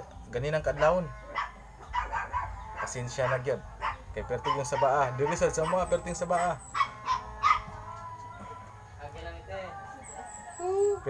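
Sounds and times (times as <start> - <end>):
dog barking: 0.7 - 7.8.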